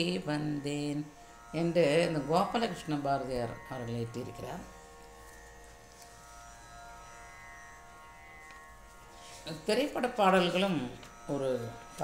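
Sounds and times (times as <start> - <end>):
person speaking: 0.0 - 4.8, 9.4 - 12.0
drone of held pitches: 0.0 - 12.0.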